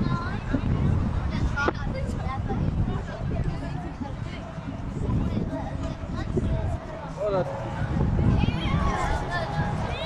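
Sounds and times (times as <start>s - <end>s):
crowd chatter: 0.0s - 10.0s
steady low rumble: 0.0s - 10.0s.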